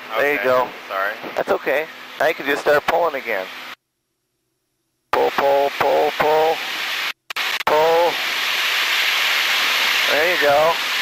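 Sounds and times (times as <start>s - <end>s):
cockpit noise hiss: 0.0s - 11.0s.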